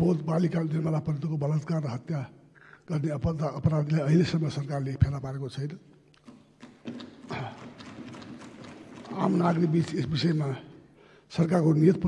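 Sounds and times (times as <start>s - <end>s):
irregular knocks and taps: 6.1s - 10.0s.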